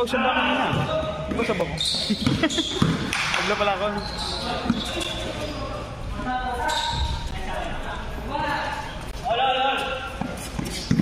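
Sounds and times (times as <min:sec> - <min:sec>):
basketball bouncing on hard court: 0:02.1 - 0:03.2.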